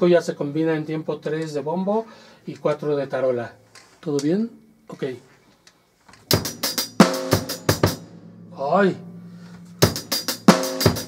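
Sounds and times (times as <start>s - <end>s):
bass drum kicks: 6.3s - 11.0s.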